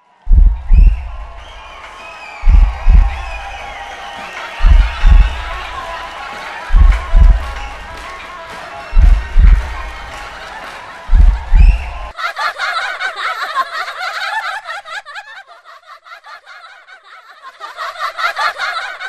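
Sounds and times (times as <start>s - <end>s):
deep bass drum hits: 0.3s - 1.4s, 2.4s - 3.6s, 4.6s - 5.6s, 6.7s - 7.8s, 9.0s - 10.0s, 11.1s - 12.1s
musical backing: 0.3s - 12.1s
women laughing and giggling: 8.8s - 19.0s.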